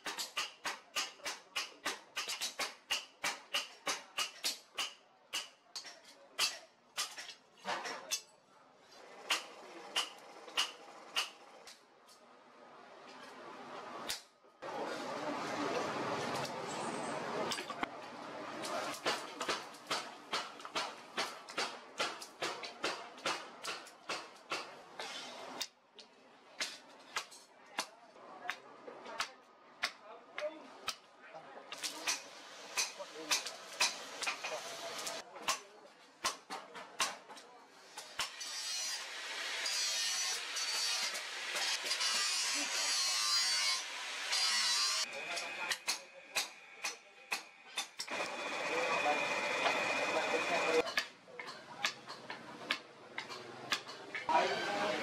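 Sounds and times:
hammer striking hot steel: 18.9s - 25.7s, 31.7s - 34.6s.

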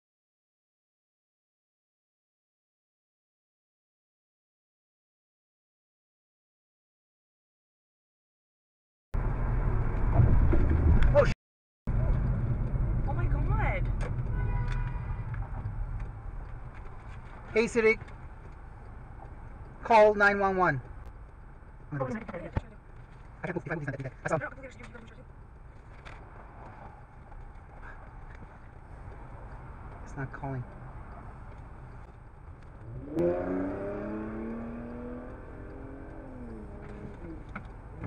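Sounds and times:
road and engine rumble: 9.2s - 38.0s.

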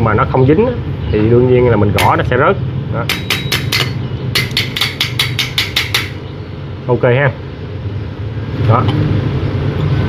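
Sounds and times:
pliers tapping on metal: 3.1s - 6.2s.

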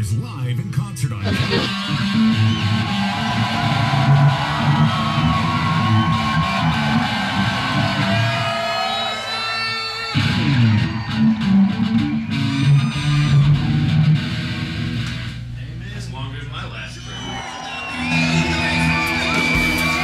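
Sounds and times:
bass guitar: 0.6s - 8.5s, 10.1s - 20.0s
electric guitar: 1.2s - 15.6s, 17.1s - 20.0s.

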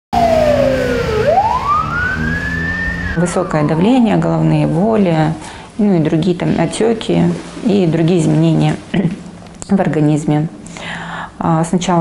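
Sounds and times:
ambulance siren wailing: 0.1s - 5.4s.

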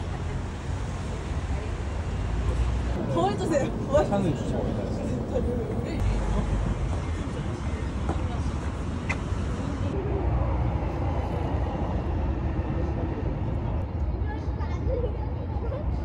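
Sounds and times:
low rumble of road traffic: 0.0s - 16.0s.

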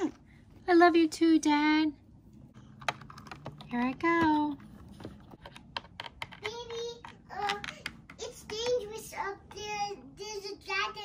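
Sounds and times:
plastic toy clicking on playset: 5.4s - 8.8s.

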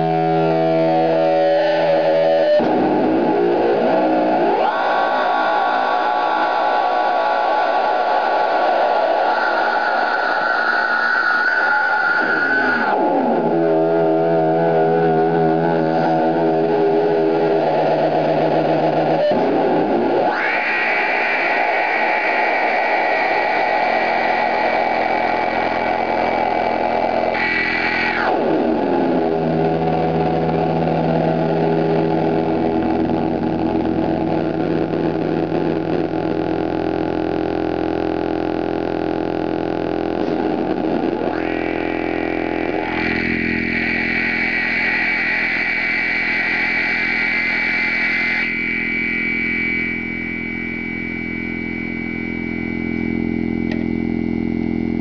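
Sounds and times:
electronic feedback drone: 0.0s - 55.0s.

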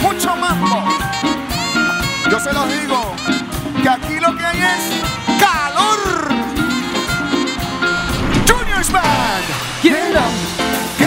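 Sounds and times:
live dance band playing: 0.0s - 11.0s
trumpet section: 0.6s - 4.0s, 6.6s - 9.8s.

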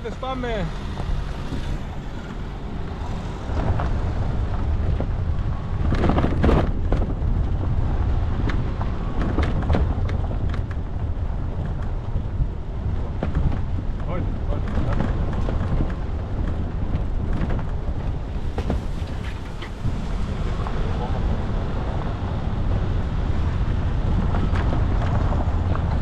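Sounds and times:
vehicle engine and tyres rumbling: 0.0s - 26.0s.

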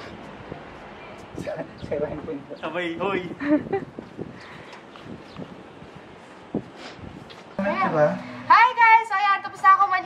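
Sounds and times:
wind on microphone: 1.3s - 7.5s.

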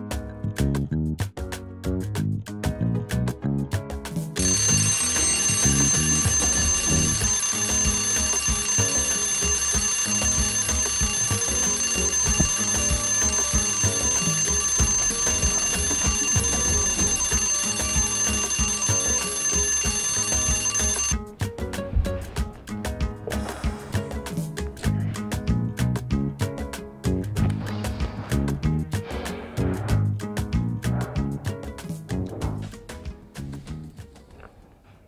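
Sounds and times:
background music: 0.0s - 35.0s
high-pitched alarm ringing: 4.4s - 21.2s.

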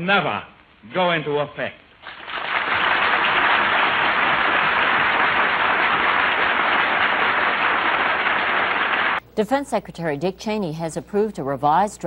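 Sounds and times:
audience applause: 2.0s - 9.2s.

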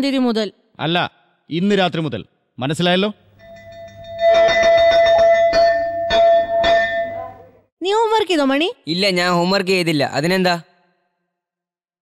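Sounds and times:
school bell ringing: 3.4s - 7.4s.

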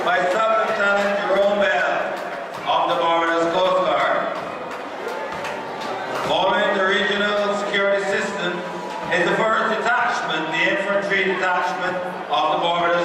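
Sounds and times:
man speaking: 0.0s - 4.4s, 6.2s - 13.0s.

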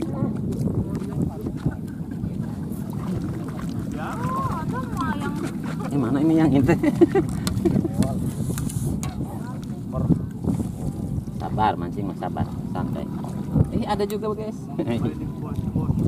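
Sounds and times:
people talking indistinctly: 0.0s - 16.0s.

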